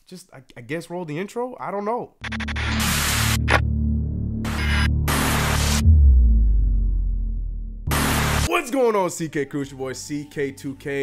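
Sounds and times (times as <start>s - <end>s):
deep electronic drone: 2.2s - 8.5s
static-like noise bursts: 4.5s - 5.8s, 7.9s - 8.5s.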